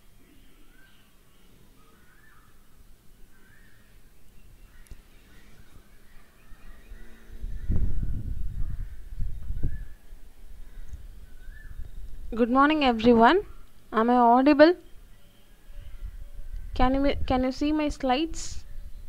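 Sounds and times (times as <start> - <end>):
low rumble with thumps: 6.6 - 10.0.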